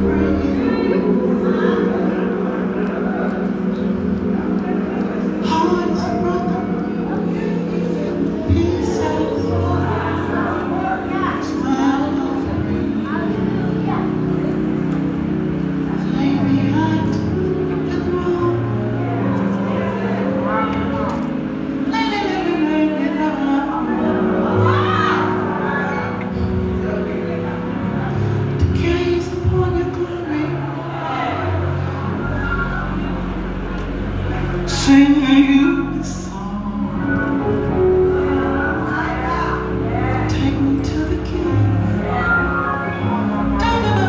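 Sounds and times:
sustained musical chords: 0.0 - 44.0
woman speaking through microphone: 4.6 - 14.9, 21.8 - 32.9, 38.4 - 44.0.

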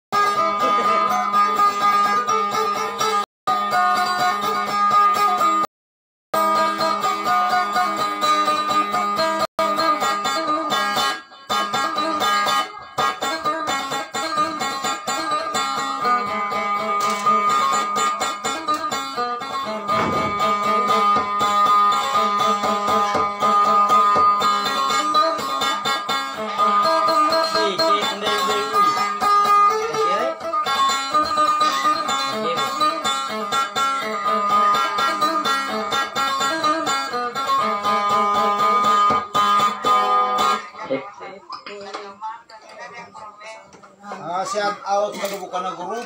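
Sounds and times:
acoustic guitar picking: 0.2 - 5.6, 6.4 - 46.0.

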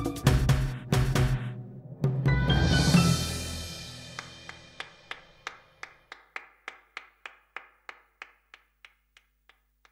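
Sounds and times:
orchestra chord: 1.2 - 5.0
person clapping alone: 4.1 - 9.9.

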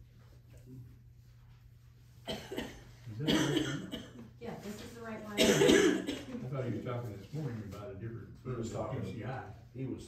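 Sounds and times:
person coughing: 2.3 - 4.2, 5.4 - 6.4.

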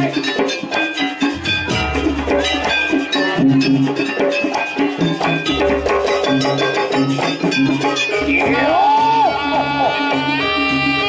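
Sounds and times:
gamelan-style ensemble playing: 0.0 - 11.0
gliding melody line: 0.0 - 11.0.

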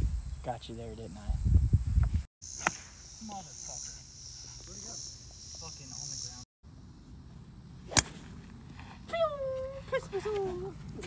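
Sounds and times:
golf club hitting ball: 2.6 - 2.9, 7.9 - 8.3.

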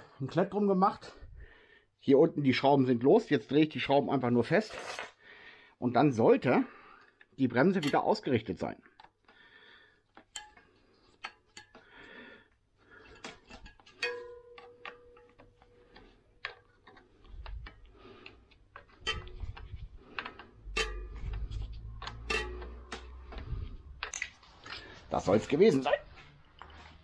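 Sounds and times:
metallic tool clicks: 10.2 - 11.8
low rumbling handling noise: 17.1 - 25.0.

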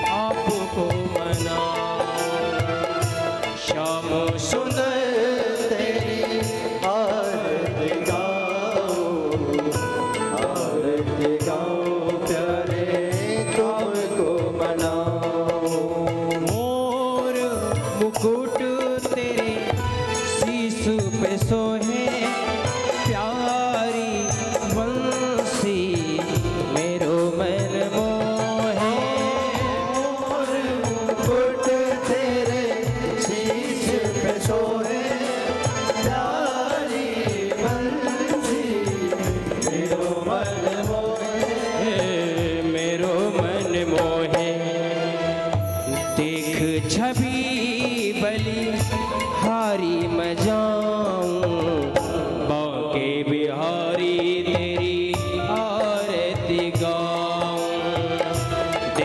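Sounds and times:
devotional music with held tones: 0.0 - 59.0.

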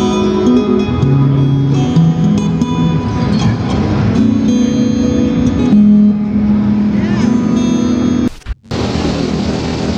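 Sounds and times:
electric guitar low note ringing: 0.0 - 9.9.

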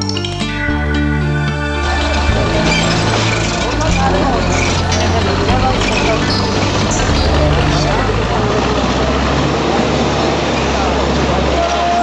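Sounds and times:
bulldozer diesel engine under load: 1.3 - 11.8.

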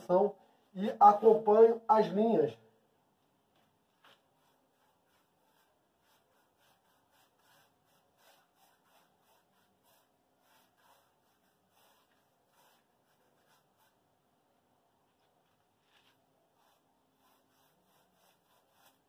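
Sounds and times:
paintbrush scratching on rough wall: 3.9 - 14.1, 15.2 - 19.0.

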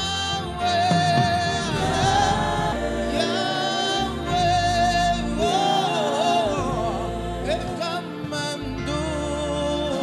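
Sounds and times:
steady low chords: 0.0 - 10.0
voices singing held notes: 0.0 - 10.0.

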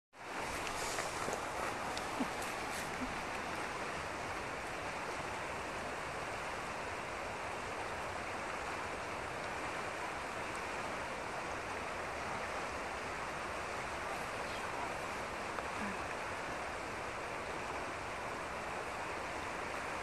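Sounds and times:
river water rushing over gravel: 0.2 - 20.0.

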